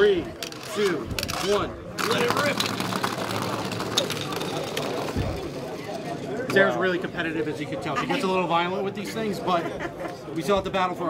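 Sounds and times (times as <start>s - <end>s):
toy vehicles buzzing and rattling: 0.4s - 6.5s.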